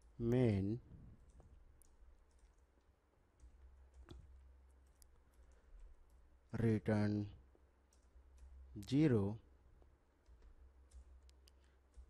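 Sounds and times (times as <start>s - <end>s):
faint keyboard keystrokes: 0.0s - 6.4s, 7.5s - 9.2s, 9.8s - 12.0s.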